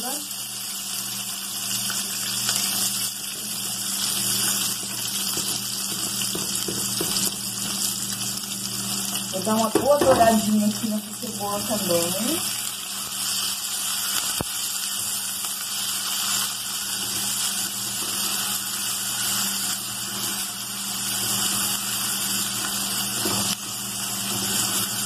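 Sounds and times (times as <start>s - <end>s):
onion sizzling in hot oil: 0.0s - 25.0s.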